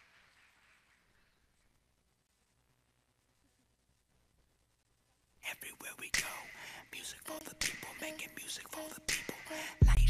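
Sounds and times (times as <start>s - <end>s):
whispering voices: 5.4s - 10.0s.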